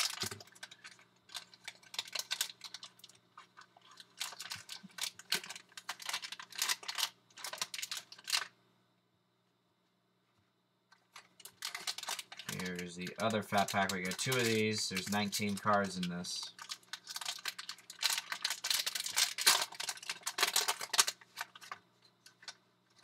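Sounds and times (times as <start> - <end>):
plastic wrapper crinkling: 0.0 - 8.6, 10.9 - 23.0.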